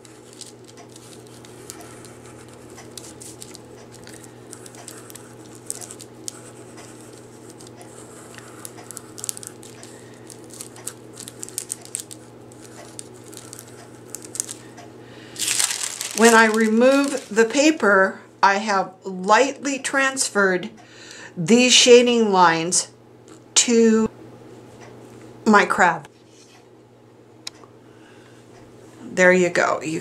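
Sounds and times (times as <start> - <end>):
pencil scratching on paper: 1.1 - 3.4, 4.9 - 8.6.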